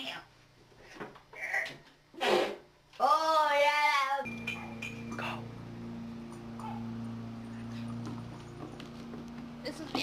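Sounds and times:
steady low hum: 0:04.2 - 0:10.0.

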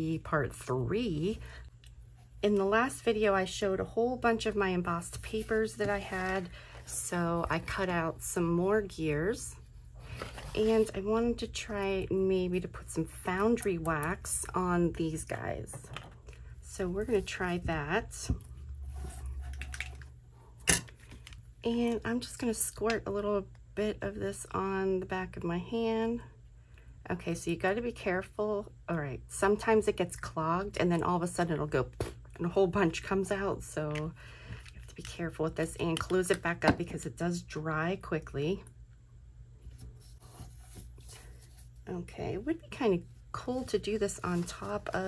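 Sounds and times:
low steady hum: 0:00.0 - 0:45.0
paper rustling on a mat: 0:39.6 - 0:41.9, 0:43.3 - 0:45.0.

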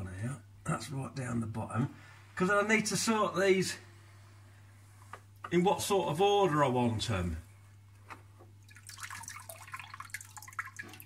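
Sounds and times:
water splashing into tank: 0:08.6 - 0:11.0
water trickling and dripping: 0:08.6 - 0:11.0.

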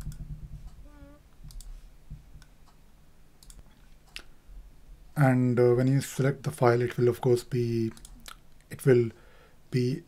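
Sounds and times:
low steady hum: 0:00.0 - 0:10.0
computer mouse clicks: 0:01.5 - 0:01.8, 0:03.4 - 0:04.3.

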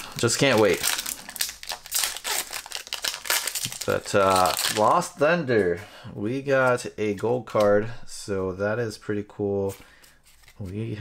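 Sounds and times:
foil wrapper crinkling: 0:00.0 - 0:05.1.

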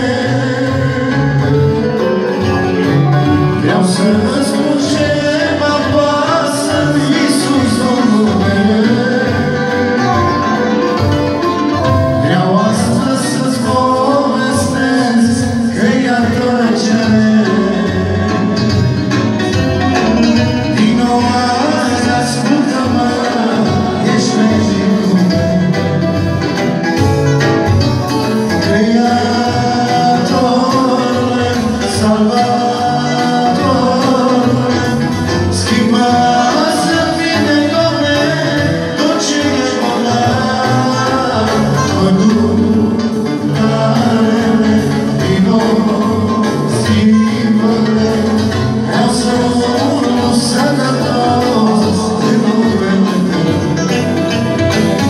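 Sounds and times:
men singing into microphones: 0:00.0 - 0:27.0, 0:27.6 - 0:55.0
accordion: 0:00.0 - 0:55.0
electronic keyboard playing: 0:00.0 - 0:55.0.

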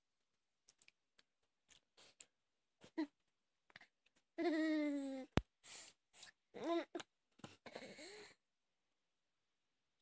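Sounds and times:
baby mouth clicks and breathing: 0:00.6 - 0:02.4
baby voiced sound: 0:06.6 - 0:07.0.

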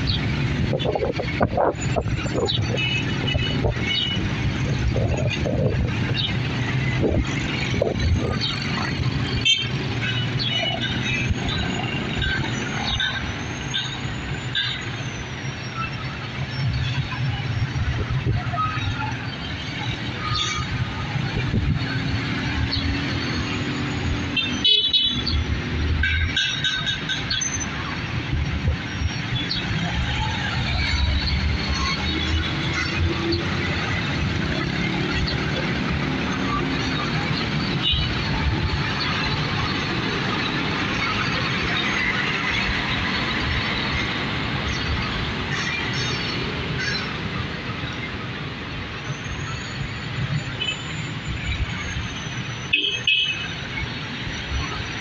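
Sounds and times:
vehicles passing in traffic: 0:00.0 - 0:55.0.

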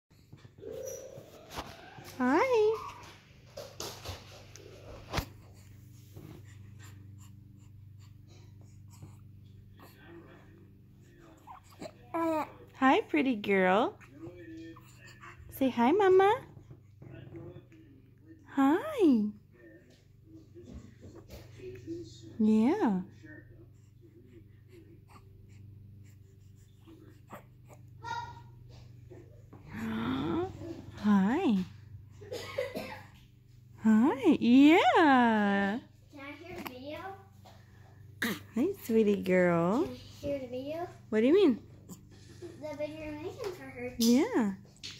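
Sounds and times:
low room hum: 0:00.1 - 0:44.9
woman baby-talking: 0:02.0 - 0:03.2, 0:15.5 - 0:16.5, 0:18.5 - 0:19.4, 0:22.4 - 0:23.1, 0:29.7 - 0:31.7, 0:33.8 - 0:37.3, 0:38.2 - 0:41.7, 0:42.5 - 0:44.7
baby breathing softly: 0:04.7 - 0:10.3, 0:23.6 - 0:27.7.

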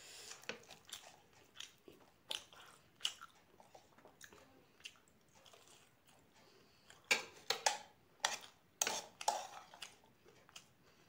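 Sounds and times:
person chewing crunchy food: 0:00.0 - 0:07.1
crunching and smacking mouth sounds: 0:00.3 - 0:07.1.

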